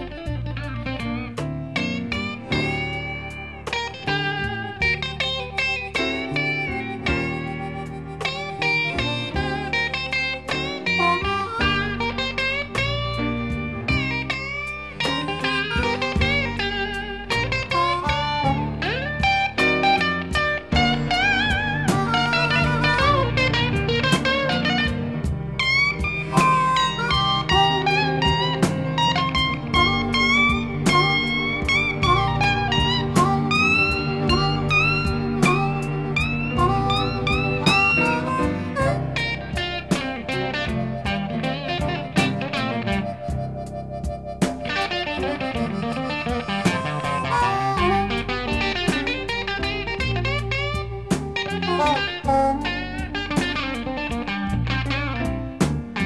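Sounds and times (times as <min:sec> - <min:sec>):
bass: 0:00.0 - 0:56.0
blues guitar solo: 0:00.0 - 0:56.0
steady drum beat: 0:01.4 - 0:56.0.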